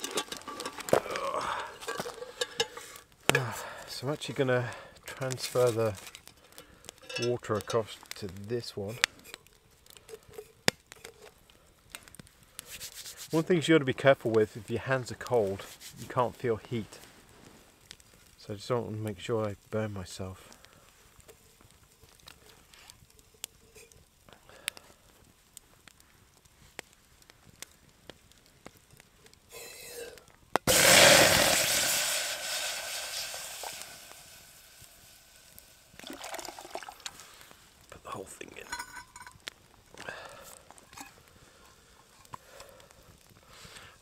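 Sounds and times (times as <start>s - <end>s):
metal cookware clinking: 0.0s - 0.8s, 7.0s - 7.5s, 38.6s - 39.4s
water hissing on hot metal: 0.0s - 25.8s, 28.6s - 39.3s.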